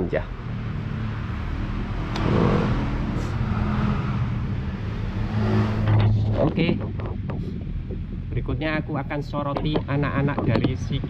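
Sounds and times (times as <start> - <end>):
vehicle engine running: 0.3 - 11.0.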